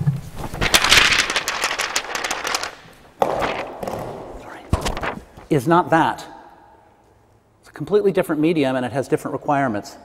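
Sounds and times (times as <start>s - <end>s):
dense crackling clicks: 0.4s - 3.7s, 4.8s - 5.5s.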